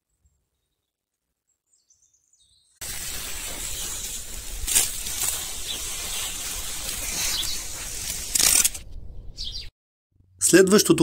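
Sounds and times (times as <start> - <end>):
pressure sprayer hissing: 2.8 - 8.4.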